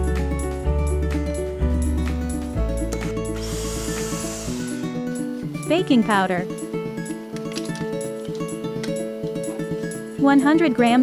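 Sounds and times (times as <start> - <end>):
background music: 0.0 - 11.0
electric hand mixer whirring: 3.4 - 5.0.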